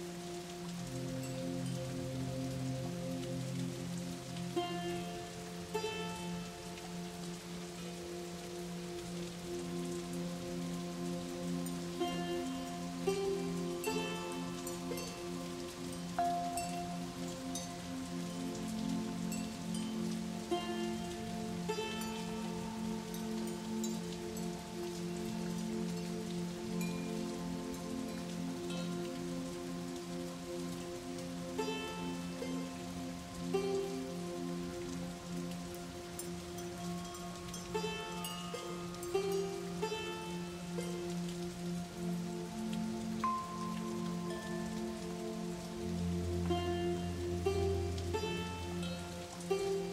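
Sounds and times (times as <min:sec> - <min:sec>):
rain pattering: 0:00.0 - 0:49.9
slow music with held chords: 0:00.0 - 0:49.9.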